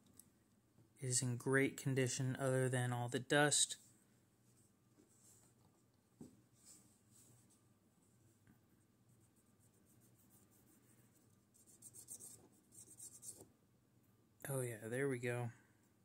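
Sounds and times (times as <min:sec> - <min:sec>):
cotton swab rubbing inside knife handle: 0:09.1 - 0:13.5.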